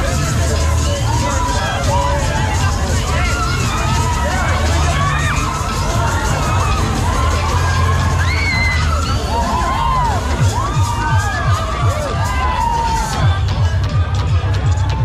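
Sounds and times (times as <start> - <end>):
riders screaming: 0.0 - 13.4
loud dance music: 0.0 - 15.0.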